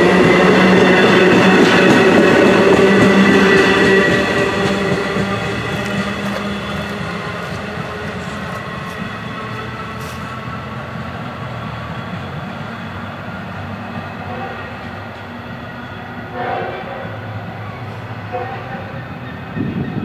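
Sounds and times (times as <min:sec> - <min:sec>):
diesel locomotive running: 0:00.0 - 0:20.0
distant train horn: 0:00.0 - 0:20.0.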